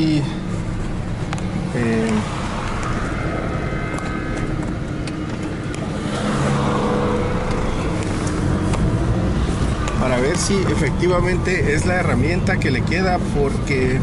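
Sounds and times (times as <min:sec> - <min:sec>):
car engine: 0:00.0 - 0:14.0
road noise: 0:00.0 - 0:14.0.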